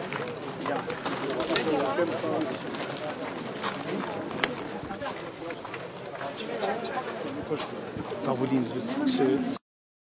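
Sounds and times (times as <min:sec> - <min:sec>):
men talking: 0:07.2 - 0:09.6.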